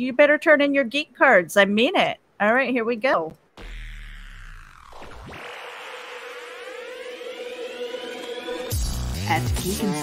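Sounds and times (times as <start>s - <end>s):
rising electronic siren tone: 3.6s - 9.0s
held electronic note: 3.6s - 9.2s.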